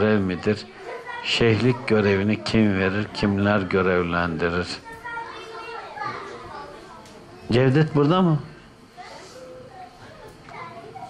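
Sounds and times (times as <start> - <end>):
child's voice: 0.6 - 1.3, 4.8 - 7.5, 9.0 - 11.0
faint background voices: 8.3 - 11.0.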